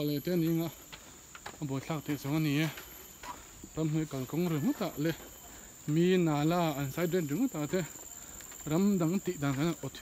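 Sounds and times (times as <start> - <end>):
insects droning: 0.0 - 10.0
man talking: 1.5 - 2.8, 3.7 - 5.3, 5.9 - 8.0, 8.6 - 10.0.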